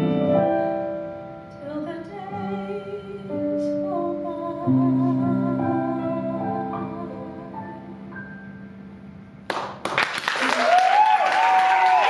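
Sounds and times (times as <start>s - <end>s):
audience applauding: 9.5s - 12.0s
person cheering: 10.4s - 12.0s.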